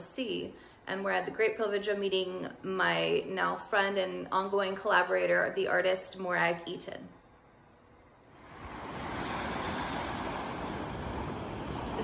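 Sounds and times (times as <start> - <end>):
waves washing onto beach: 8.3 - 12.0.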